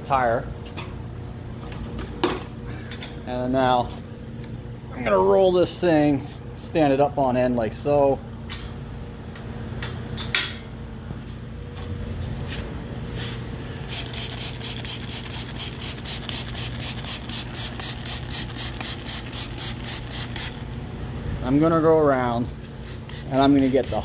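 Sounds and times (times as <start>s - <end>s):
steady low hum: 0.0s - 24.0s
spray bottle pumping: 13.8s - 20.6s, 22.8s - 24.0s.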